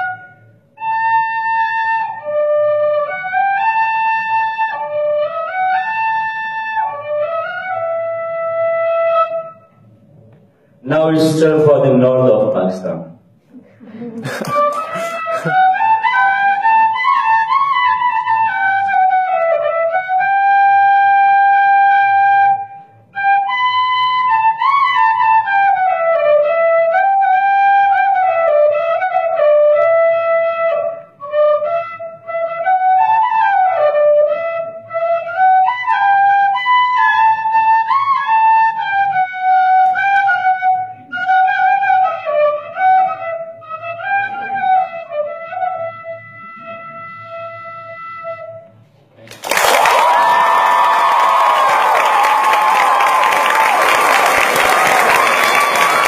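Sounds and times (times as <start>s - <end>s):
solo flute melody: 0.0s - 10.0s, 14.4s - 48.9s, 49.7s - 56.0s.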